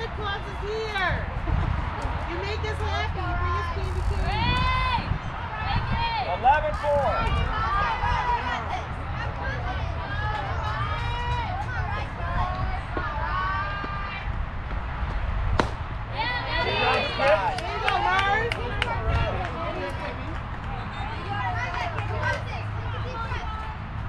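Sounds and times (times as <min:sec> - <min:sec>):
children shouting and chanting cheers: 0:03.0 - 0:14.3, 0:16.1 - 0:23.8
sharp crack: 0:15.5 - 0:16.0.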